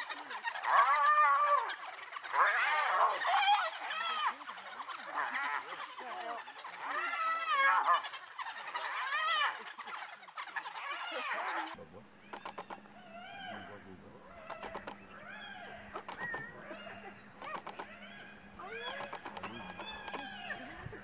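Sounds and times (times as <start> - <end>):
yelping chirps and clicks: 0.0 - 11.8, 12.4 - 12.9, 14.5 - 15.0, 17.4 - 20.7
low steady hum: 0.0 - 21.0
wild dogs twittering calls: 0.0 - 21.0.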